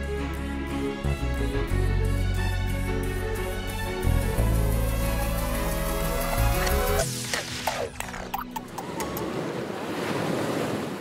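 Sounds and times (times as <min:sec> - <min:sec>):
ocean waves breaking: 0:07.0 - 0:11.0.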